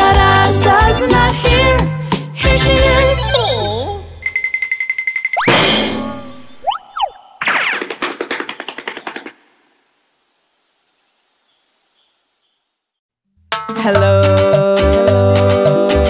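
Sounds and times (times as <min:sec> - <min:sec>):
cartoon music: 0:02.5 - 0:04.2
whistle-like glides: 0:06.3 - 0:07.4.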